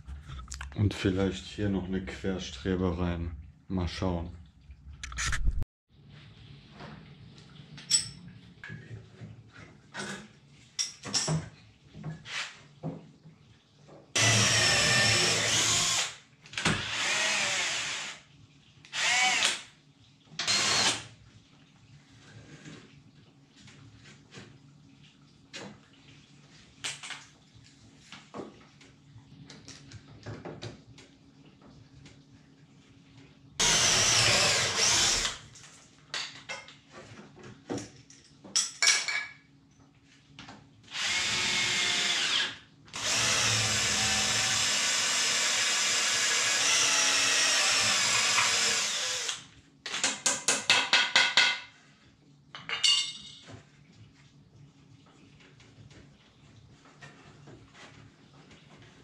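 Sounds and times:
cordless drill into wood: 0:14.2 - 0:18.2, 0:18.9 - 0:19.6, 0:20.4 - 0:21.0, 0:33.6 - 0:35.4, 0:40.9 - 0:49.4
drill stuttering pulses: 0:33.6 - 0:35.4.

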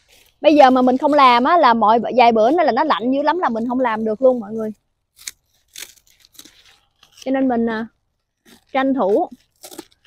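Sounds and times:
plant stalks rustling: 0:00.0 - 0:10.0.

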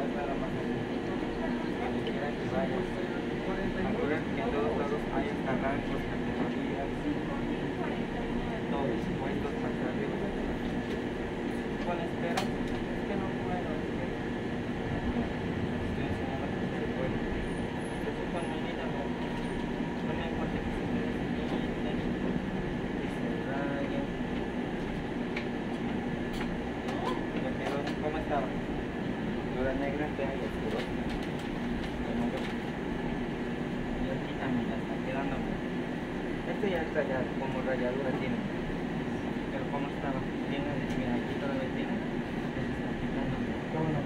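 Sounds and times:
faint voices: 0:00.0 - 0:35.7
shop machinery humming: 0:00.0 - 0:44.0.

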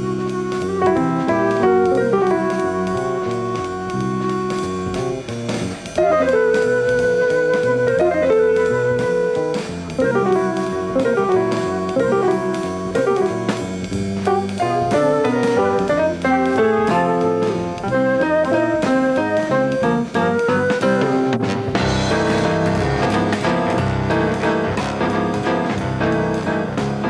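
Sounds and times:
jazz band playing a waltz: 0:00.0 - 0:27.0.

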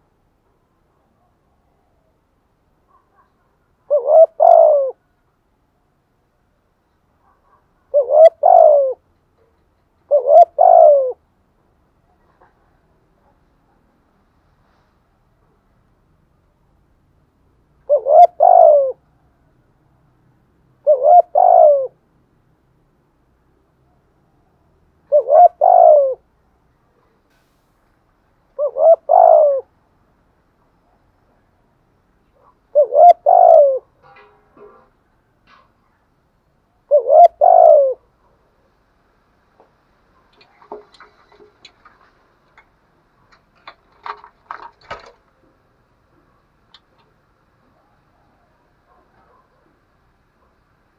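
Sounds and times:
dove cooing: 0:02.9 - 0:05.2, 0:07.2 - 0:11.3, 0:17.8 - 0:19.1, 0:20.8 - 0:22.0, 0:25.0 - 0:26.3, 0:28.6 - 0:29.7, 0:32.3 - 0:34.9, 0:36.9 - 0:38.1, 0:40.2 - 0:50.6
light clicks and taps in cage: 0:09.1 - 0:10.1, 0:39.6 - 0:45.4, 0:46.2 - 0:47.2.

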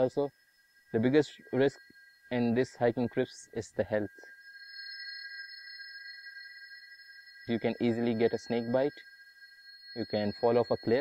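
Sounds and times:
high-pitched electronic drone: 0:00.0 - 0:11.0.

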